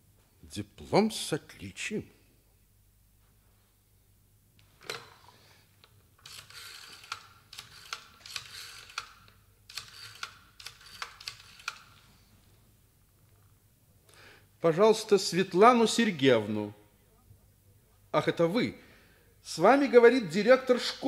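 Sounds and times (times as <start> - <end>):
rotary dial clicks: 6.2 - 12.0.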